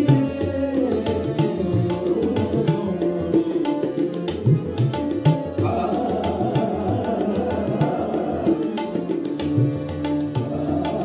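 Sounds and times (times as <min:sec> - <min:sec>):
sustained harmonium: 0:00.0 - 0:11.0
tabla strokes: 0:00.0 - 0:11.0
tanpura drone: 0:00.0 - 0:11.0
man singing fast: 0:05.5 - 0:09.4, 0:10.4 - 0:11.0.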